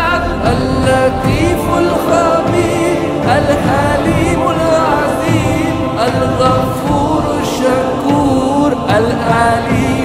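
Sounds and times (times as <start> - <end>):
chorus singing: 0.0 - 10.0
instrumental accompaniment: 0.0 - 10.0
man singing with vibrato: 0.0 - 10.0.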